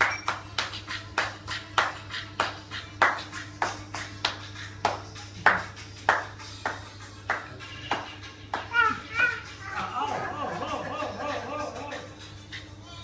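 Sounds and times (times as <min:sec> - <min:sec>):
hand clapping in steady beat: 0:00.0 - 0:09.0.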